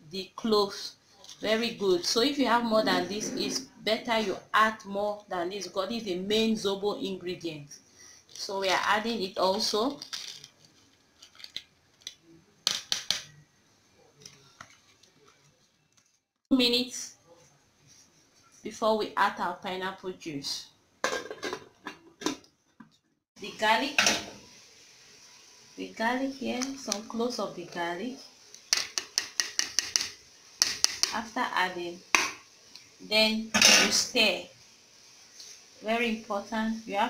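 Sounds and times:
kitchenware clicking and clinking: 0:21.0 - 0:22.5, 0:24.0 - 0:24.4, 0:33.5 - 0:34.0.

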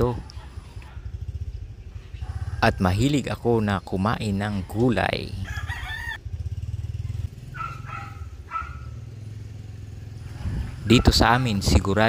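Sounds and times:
motorcycle engine rumbling: 0:00.0 - 0:12.0
chicken calling: 0:02.0 - 0:03.2, 0:04.3 - 0:06.2, 0:07.5 - 0:09.0.

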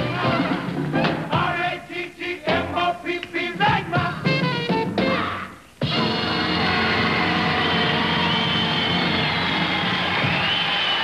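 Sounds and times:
sustained band music: 0:00.0 - 0:11.0.

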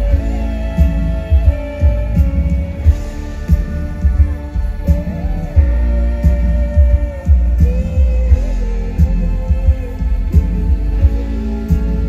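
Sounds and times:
kick drum and bass thumps: 0:00.0 - 0:12.0
woman singing: 0:00.0 - 0:12.0.

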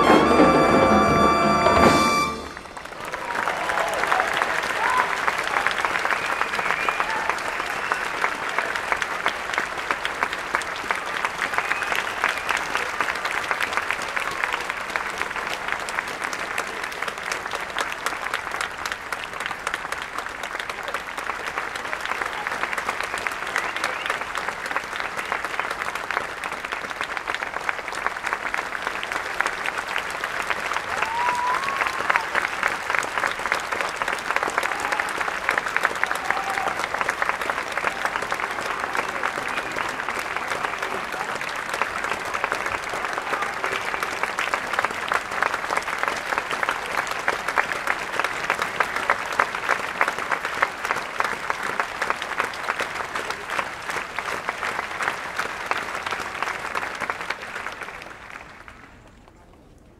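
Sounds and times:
audience applauding: 0:00.0 - 0:59.6.

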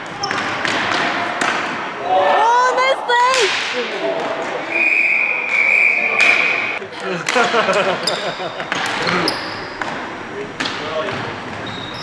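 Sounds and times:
players shouting: 0:01.9 - 0:06.8
referee whistle blast: 0:04.7 - 0:06.8.

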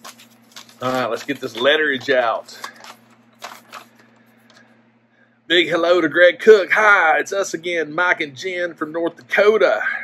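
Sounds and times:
paper crinkles: 0:00.0 - 0:04.6
paper rustling: 0:00.0 - 0:04.6.

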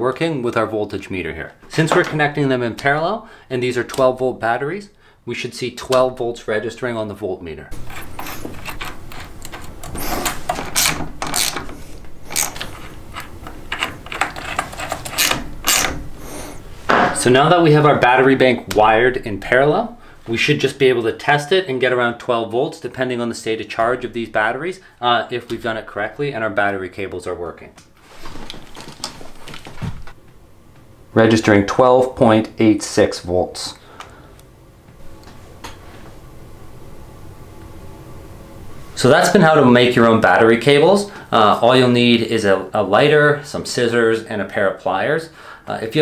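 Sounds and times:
multimeter leads clicking and rustling: 0:07.8 - 0:16.0.

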